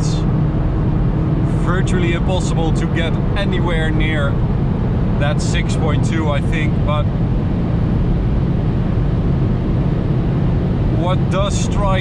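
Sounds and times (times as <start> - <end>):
car engine: 0.0 - 12.0
road and wind noise drone: 0.0 - 12.0.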